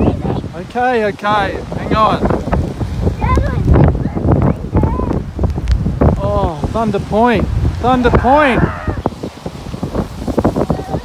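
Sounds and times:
surf breaking: 0.0s - 11.0s
wind buffeting microphone: 0.0s - 11.0s.

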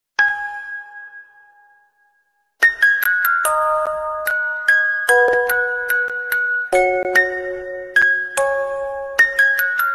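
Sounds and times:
two-tone bell chime: 3.5s - 9.9s.

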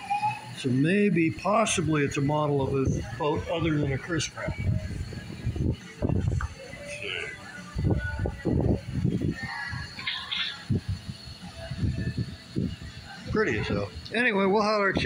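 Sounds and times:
indistinct background voices: 0.2s - 15.0s.

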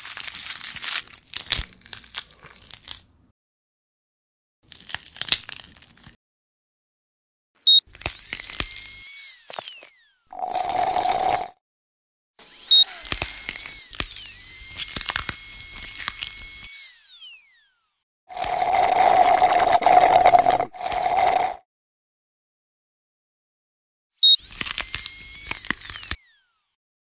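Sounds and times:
dental drill whining: 7.7s - 11.5s, 12.4s - 21.6s, 24.2s - 26.8s.

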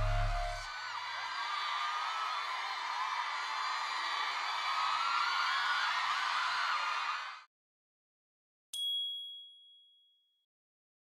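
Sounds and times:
high-pitched ding: 8.8s - 10.0s.

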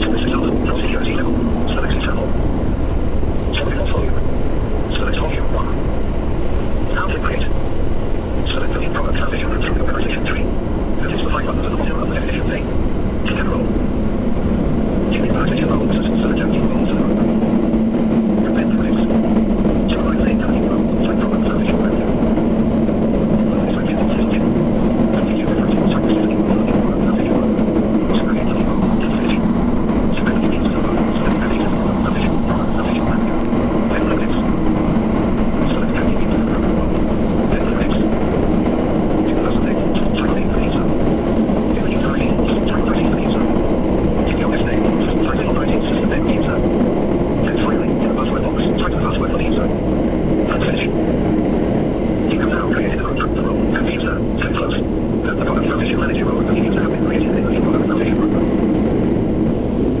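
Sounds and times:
train wheels rumbling on rail: 0.0s - 60.0s.

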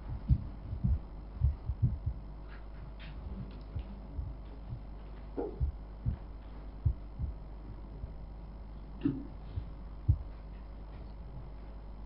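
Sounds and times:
dull low thumps: 0.0s - 8.3s, 9.0s - 11.6s
low electrical hum: 0.0s - 12.0s.

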